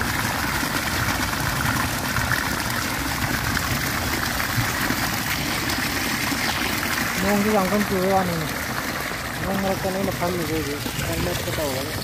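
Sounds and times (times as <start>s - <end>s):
floodwater rushing into net: 0.0s - 12.0s.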